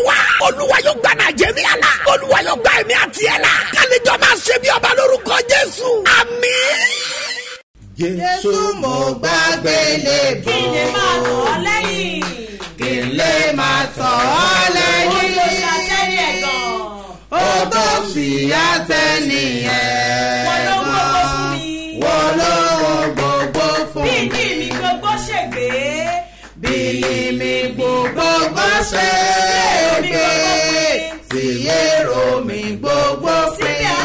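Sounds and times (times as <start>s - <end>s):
voices chanting melodically: 0.0s - 7.6s, 8.8s - 24.8s, 26.7s - 34.0s.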